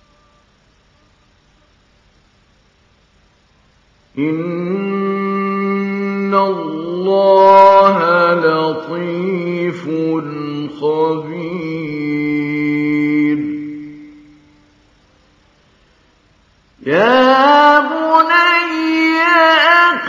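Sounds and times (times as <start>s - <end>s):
man reciting melodically: 4.2s - 14.2s, 16.8s - 20.0s.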